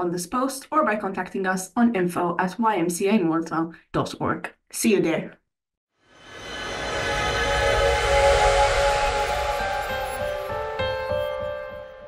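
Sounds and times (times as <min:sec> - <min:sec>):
hissing whoosh: 0:06.1 - 0:11.1
sustained synth chord: 0:06.1 - 0:12.0.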